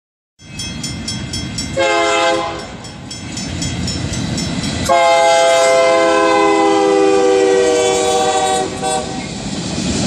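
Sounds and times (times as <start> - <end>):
train bell ringing: 0.4 - 5.8
diesel locomotive engine rumble: 0.4 - 10.0
train horn blast: 1.8 - 2.8, 4.9 - 9.3.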